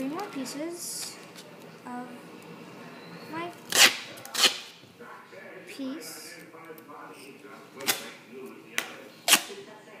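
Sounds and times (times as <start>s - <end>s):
duct tape ripping off roll: 3.7s - 4.8s, 9.3s - 9.5s.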